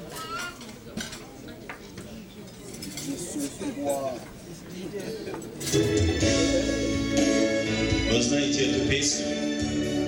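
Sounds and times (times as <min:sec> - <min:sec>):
faint murmured voices: 0:00.0 - 0:07.6
cutlery and dishes clinking: 0:00.1 - 0:04.3, 0:05.0 - 0:06.2.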